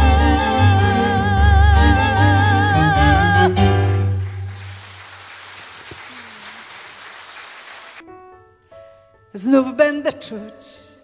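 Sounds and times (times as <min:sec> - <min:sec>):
audience applauding: 0:04.0 - 0:08.0.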